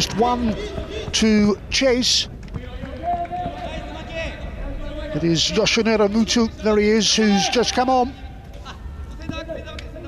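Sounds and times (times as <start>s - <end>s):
stadium background rumble: 0.0s - 10.0s.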